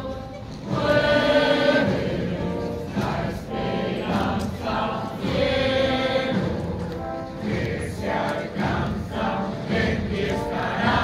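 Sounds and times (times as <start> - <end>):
choir singing slow religious music: 0.0 - 11.0.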